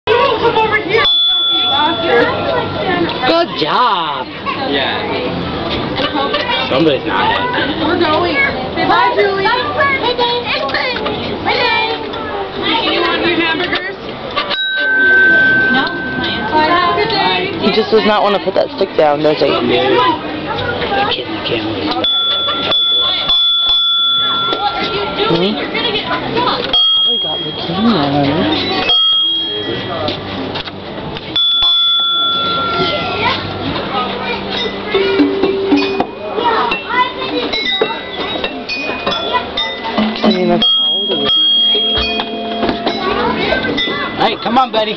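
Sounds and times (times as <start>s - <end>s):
metal pipe chime ringing: 1.0s - 2.4s, 14.5s - 17.3s, 22.0s - 25.4s, 28.6s - 30.0s, 31.4s - 33.2s, 34.5s - 44.9s.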